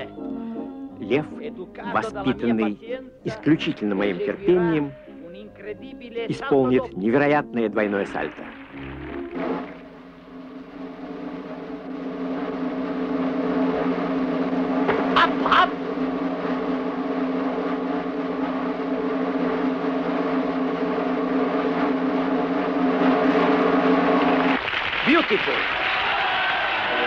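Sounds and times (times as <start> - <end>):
droning held chord: 9.7 - 24.6.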